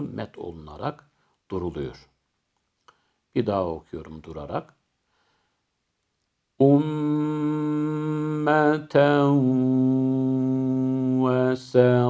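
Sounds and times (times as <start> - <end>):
man chanting melodically: 0.0 - 2.1, 6.6 - 12.0.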